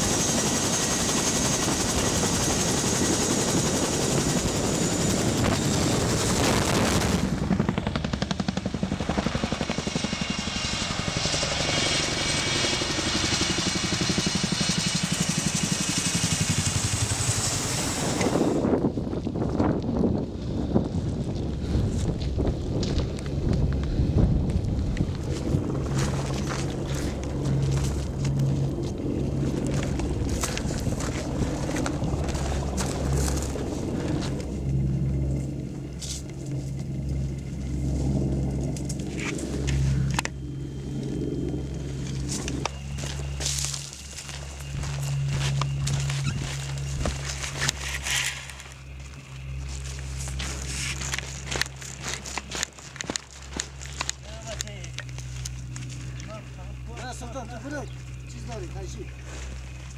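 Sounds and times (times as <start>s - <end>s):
helicopter rotor wash: 0.0s - 18.8s
turbine whine: 0.0s - 59.9s
low drone: 10.0s - 59.9s
footsteps on rocky ground: 19.1s - 35.1s, 41.8s - 59.9s.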